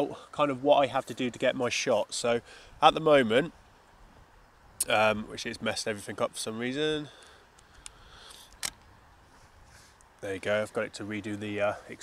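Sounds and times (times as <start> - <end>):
faint steady hiss: 0.0 - 12.0
camera click: 7.8 - 8.9.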